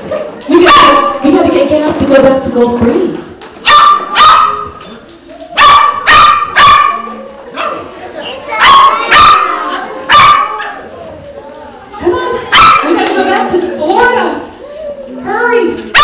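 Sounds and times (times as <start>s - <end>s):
dog barking: 0.6s - 1.2s, 3.6s - 4.7s, 5.6s - 7.8s, 8.6s - 10.8s, 12.5s - 12.9s.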